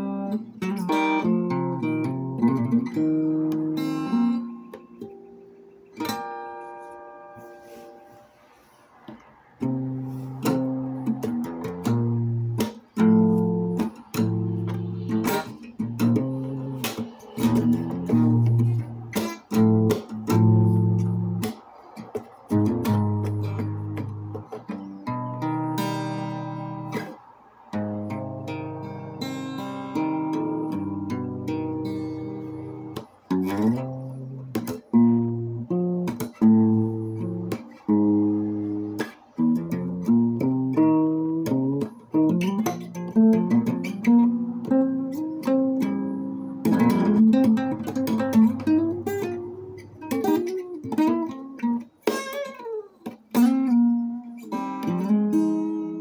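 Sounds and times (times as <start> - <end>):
acoustic guitar playing: 0.0 - 56.0.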